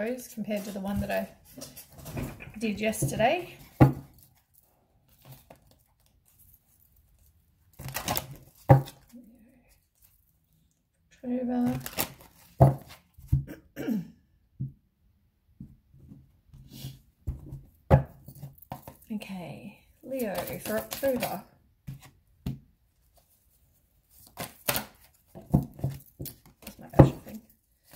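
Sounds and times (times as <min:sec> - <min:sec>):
cards being shuffled: 0:20.1 - 0:22.2.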